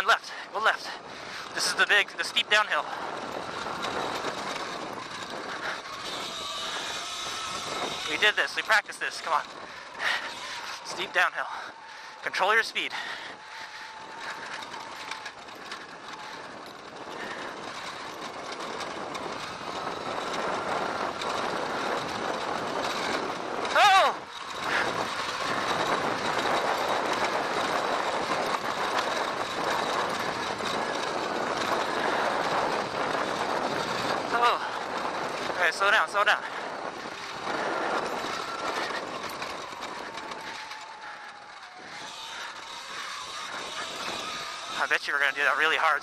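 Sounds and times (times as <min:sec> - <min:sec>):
tyre and trail noise: 0:00.0 - 0:46.0
wind over microphone: 0:00.0 - 0:46.0
faint electric motor whine: 0:03.0 - 0:08.7, 0:36.7 - 0:45.8
rider shouting: 0:10.2 - 0:13.4, 0:23.6 - 0:25.0, 0:34.3 - 0:34.9, 0:35.5 - 0:36.6.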